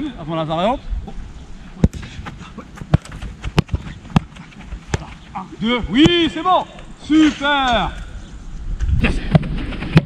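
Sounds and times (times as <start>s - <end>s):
football being kicked: 1.8s - 5.3s
running footsteps: 1.9s - 6.4s.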